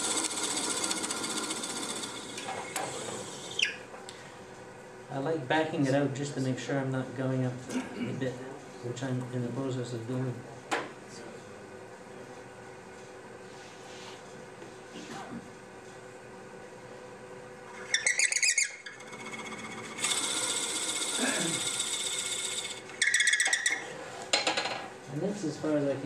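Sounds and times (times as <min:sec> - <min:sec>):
wood lathe humming: 0:00.0 - 0:03.7, 0:17.7 - 0:23.8
drill bit squealing: 0:00.0 - 0:03.8, 0:17.7 - 0:23.9.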